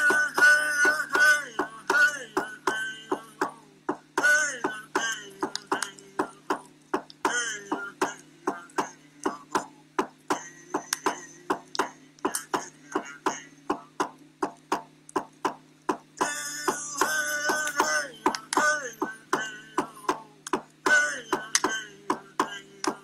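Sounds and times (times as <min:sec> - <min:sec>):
man singing: 0:00.0 - 0:14.0, 0:16.2 - 0:23.0.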